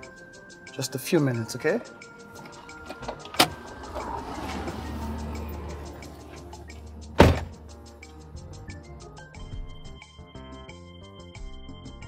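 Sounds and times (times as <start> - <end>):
car door shutting: 2.4 - 7.6
low rumble of car: 2.5 - 8.8.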